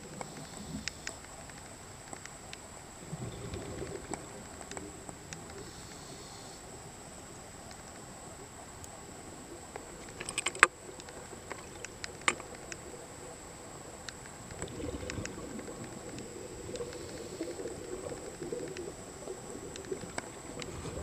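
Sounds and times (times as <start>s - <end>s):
underwater hiss: 0.0s - 1.3s, 3.0s - 7.3s, 11.4s - 21.0s
sharp underwater clicks: 0.1s - 2.7s, 9.7s - 13.2s, 14.0s - 19.0s, 19.6s - 20.7s.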